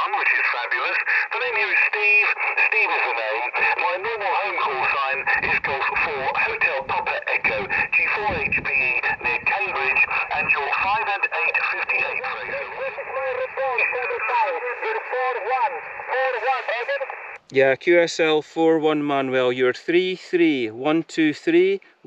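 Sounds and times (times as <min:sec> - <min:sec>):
person speaking over radio: 0:00.0 - 0:17.3
radio band hiss: 0:00.0 - 0:17.4.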